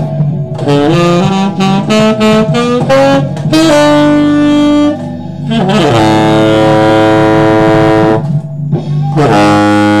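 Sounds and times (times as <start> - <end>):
backing track with bass: 0.0 - 10.0
tenor saxophone long notes: 0.5 - 8.4, 9.1 - 10.0.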